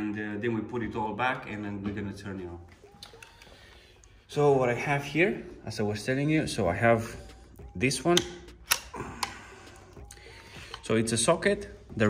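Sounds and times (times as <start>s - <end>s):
plug sharp clicks: 8.1s - 9.4s.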